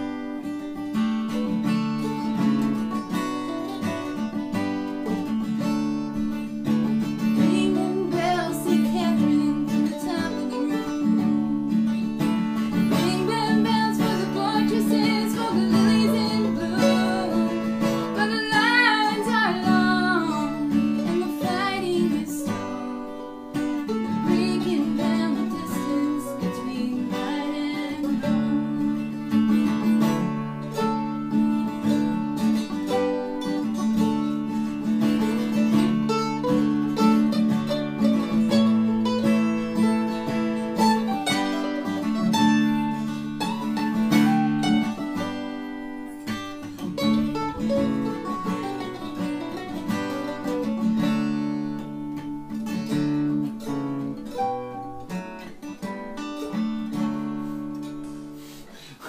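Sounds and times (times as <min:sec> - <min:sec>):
acoustic guitar: 0:00.0 - 0:59.0
eight-string mandolin: 0:00.0 - 0:59.0.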